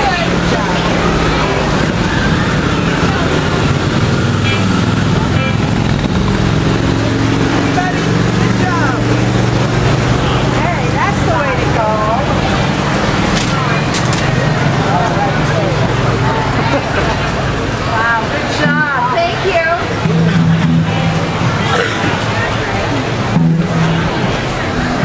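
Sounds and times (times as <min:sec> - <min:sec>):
car engines humming: 0:00.0 - 0:25.0
people talking nearby: 0:00.0 - 0:25.0.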